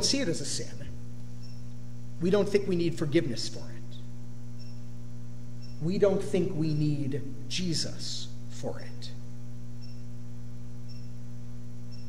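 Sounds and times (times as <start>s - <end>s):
man speaking: 0.0s - 1.0s, 2.2s - 4.0s, 5.8s - 9.2s
electrical mains hum: 0.0s - 12.0s.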